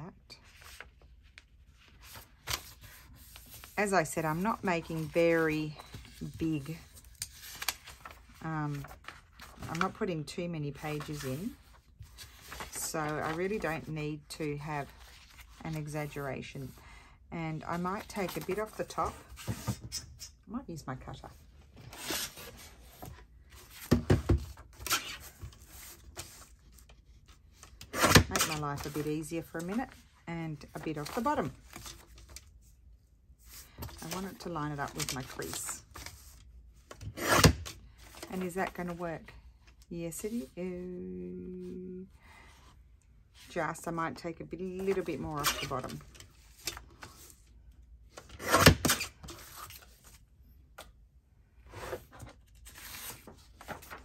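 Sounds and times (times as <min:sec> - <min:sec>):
paper rustling: 0:51.9 - 0:54.0.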